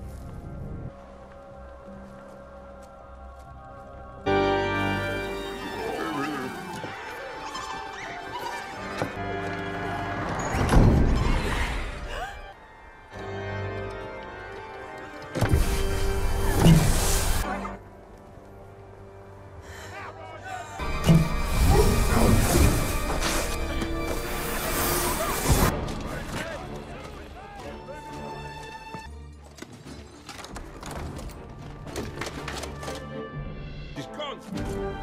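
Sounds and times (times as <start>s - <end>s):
film score with held notes: 0.0s - 35.0s.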